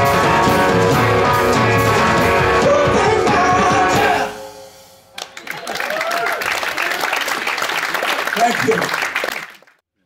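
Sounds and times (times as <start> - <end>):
audience applauding and cheering: 5.1 - 9.8.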